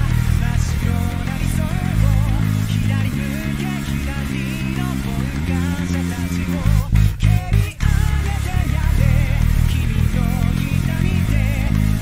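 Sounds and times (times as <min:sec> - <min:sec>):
electric bass plucked notes: 0:00.0 - 0:12.0
recorded song: 0:00.0 - 0:12.0.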